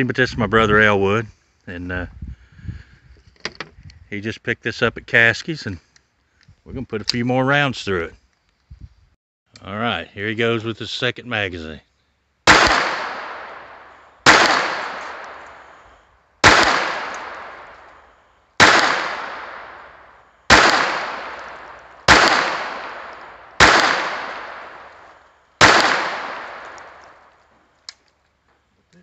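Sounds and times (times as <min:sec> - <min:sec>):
pistol shots echoing: 0:12.5 - 0:15.8, 0:16.4 - 0:18.0, 0:18.6 - 0:27.3
pistol misfire click: 0:14.3 - 0:15.6, 0:16.4 - 0:18.0, 0:20.5 - 0:28.2.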